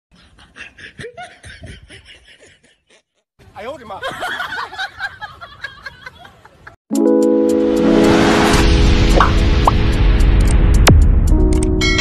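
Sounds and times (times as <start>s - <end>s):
person laughing: 0.2s - 3.2s.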